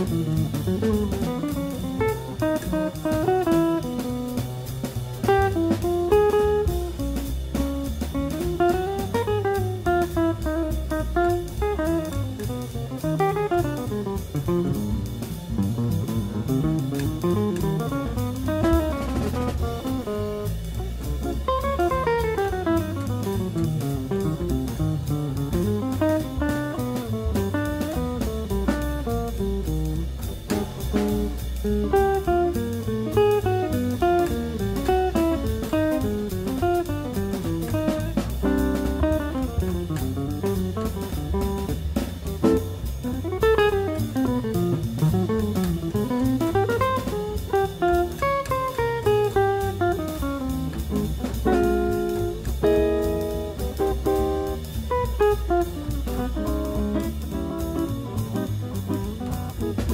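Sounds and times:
bass: 0.0 - 59.9
drum kit: 0.0 - 59.9
jazz electric guitar solo: 0.0 - 59.9.

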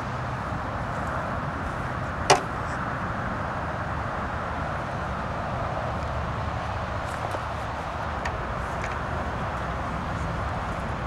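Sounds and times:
steady rumble and hiss: 0.0 - 11.0.

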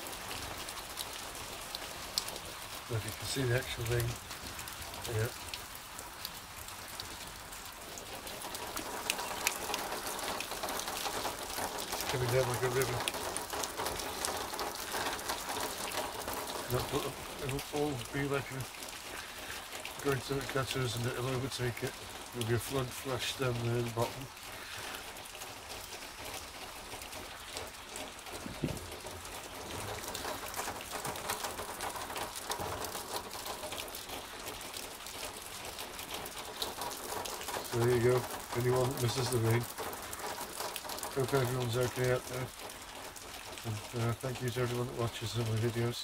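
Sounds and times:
heavy rain falling: 0.0 - 46.0
low thump: 28.4 - 28.9.

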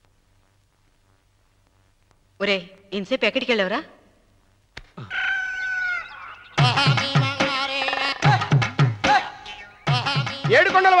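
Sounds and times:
rooster crowing: 5.0 - 6.5
film music with drums: 6.6 - 11.0.

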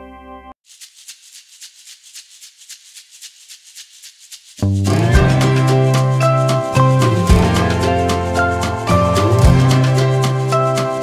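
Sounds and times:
shaker rattling rhythm: 0.6 - 11.0.

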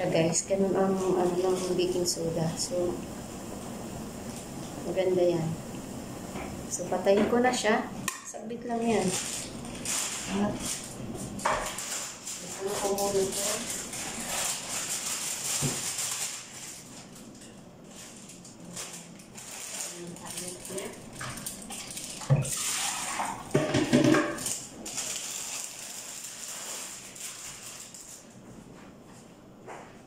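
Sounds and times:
pots and utensils clattering: 21.2 - 24.7.

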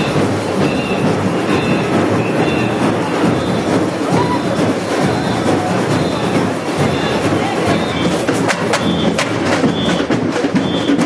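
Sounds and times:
drum group playing: 0.0 - 11.0.

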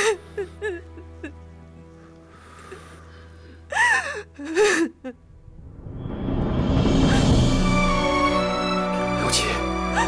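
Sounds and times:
woman sobbing wails: 0.0 - 1.4, 3.7 - 5.2, 9.8 - 10.0.

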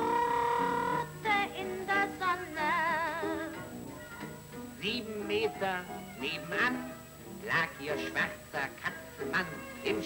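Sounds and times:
person singing with vibrato: 0.0 - 4.2
jazz dance band: 0.0 - 10.0.

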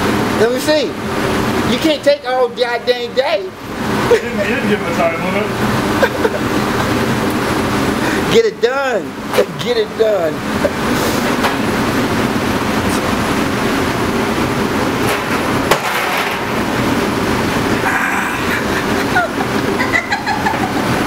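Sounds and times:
exhaust hood fan roar: 0.0 - 21.0.

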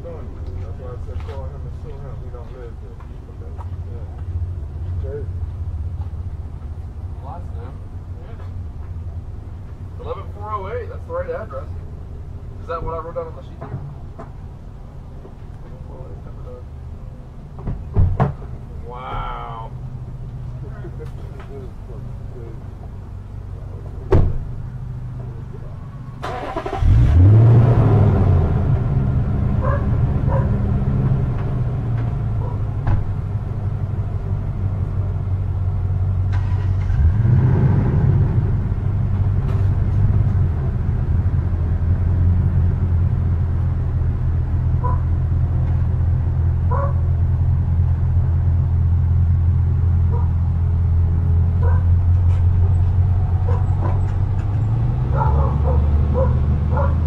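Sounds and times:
truck engine starting and idling: 19.5 - 57.0.

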